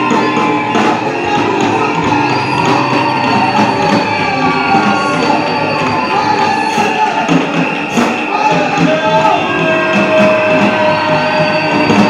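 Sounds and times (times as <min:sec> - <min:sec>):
guitar: 0:00.0 - 0:12.0
steady percussion beat: 0:00.0 - 0:12.0
sustained instrument tones: 0:00.0 - 0:12.0
worship band music: 0:00.0 - 0:12.0.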